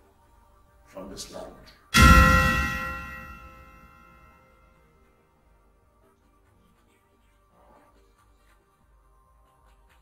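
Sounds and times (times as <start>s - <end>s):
ringing bell-like chime: 2.0s - 4.3s.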